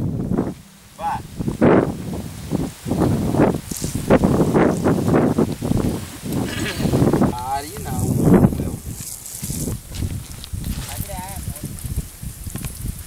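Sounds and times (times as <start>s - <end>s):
people talking: 1.0s - 1.3s, 6.4s - 9.0s, 10.7s - 11.8s.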